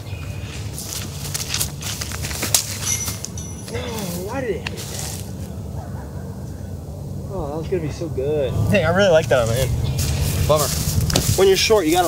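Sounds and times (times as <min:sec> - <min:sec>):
footsteps on dry grass: 0:00.0 - 0:05.6, 0:09.4 - 0:12.0
sharp clicks and rustles: 0:00.6 - 0:05.4.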